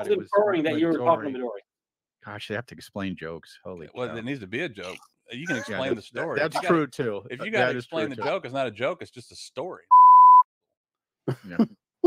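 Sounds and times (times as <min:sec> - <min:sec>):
censor bleep tone: 0:09.9 - 0:10.5.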